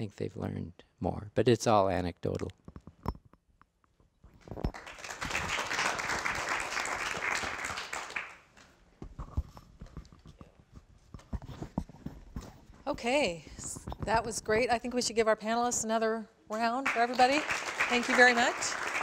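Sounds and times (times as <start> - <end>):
audience clapping: 4.7 - 8.7, 16.8 - 19.0.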